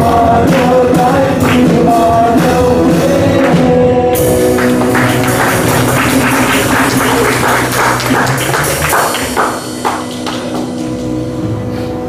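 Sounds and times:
steady percussion pattern: 0:00.0 - 0:11.5
band playing instrumental music: 0:00.0 - 0:12.0
sustained guitar and keyboard notes: 0:00.0 - 0:12.0.

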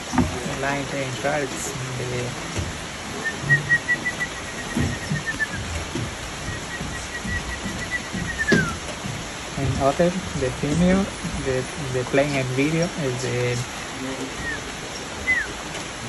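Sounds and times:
man whistling bird song: 0:03.2 - 0:05.7, 0:06.4 - 0:08.8, 0:14.4 - 0:15.5.

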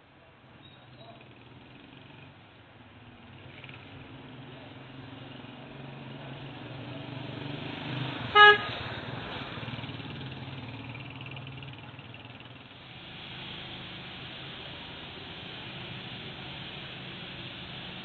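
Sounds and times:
traffic engine hum: 0:00.0 - 0:18.0
vehicle horn toot: 0:08.3 - 0:08.8.

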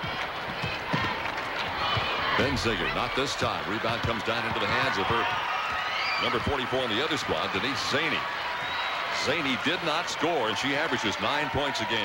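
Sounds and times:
crowd murmur: 0:00.0 - 0:04.8.

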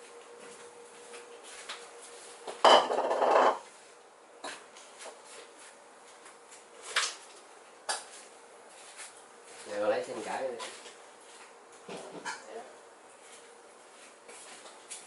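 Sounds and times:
dishes and utensils clattering: 0:02.5 - 0:03.6.

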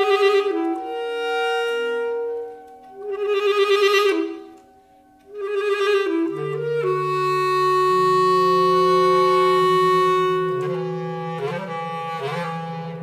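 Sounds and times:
bass clarinet long note: 0:00.0 - 0:04.6, 0:05.3 - 0:13.0
low wavering sustained tone: 0:00.0 - 0:13.0.

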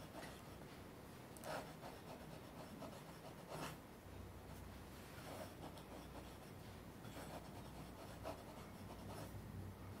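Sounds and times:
low steady hum: 0:00.0 - 0:10.0
pen nib scratching on paper: 0:01.4 - 0:03.8, 0:05.2 - 0:09.4.

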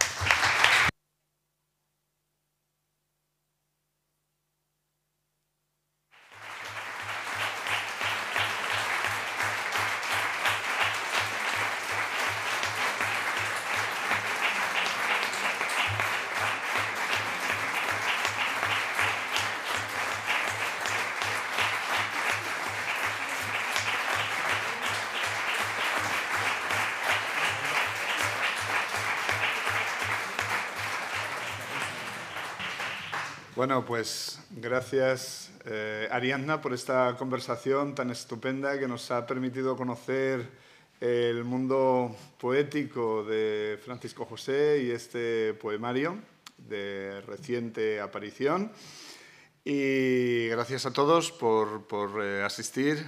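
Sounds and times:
audience applauding: 0:00.0 - 0:00.9, 0:06.2 - 0:33.7.

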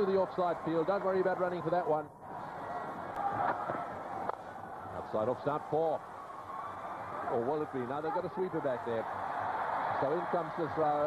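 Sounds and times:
crowd hubbub: 0:02.2 - 0:09.8.

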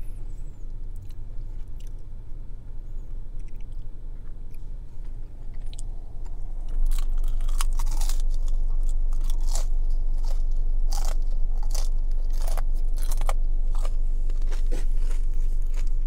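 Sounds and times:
low hum: 0:00.0 - 0:16.0
crunching fried chicken skin: 0:06.6 - 0:16.0.

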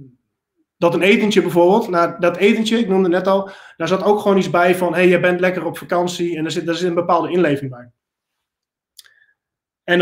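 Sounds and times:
man speaking: 0:00.8 - 0:08.0.

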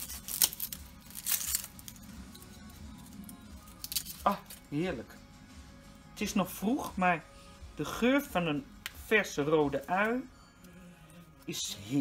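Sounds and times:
onion skin crackling tears: 0:00.0 - 0:02.0
faint background music: 0:00.0 - 0:12.0.

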